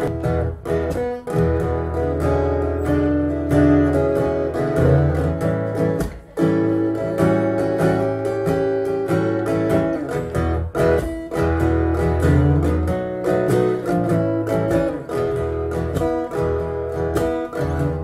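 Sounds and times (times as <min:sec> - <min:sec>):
electric guitar strumming chords: 0:00.0 - 0:18.0.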